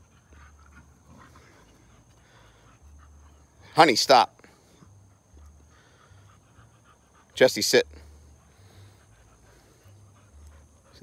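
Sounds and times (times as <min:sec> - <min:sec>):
dogs panting: 0:00.0 - 0:11.0.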